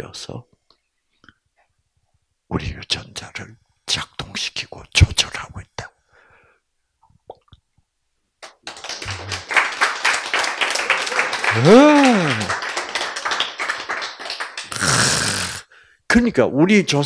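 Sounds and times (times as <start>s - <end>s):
audience clapping: 8.4s - 15.6s
person exclaiming: 11.5s - 12.5s.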